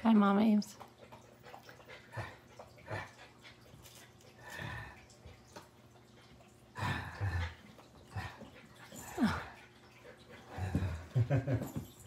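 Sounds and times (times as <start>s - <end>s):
dog growly grunts: 6.8s - 8.4s.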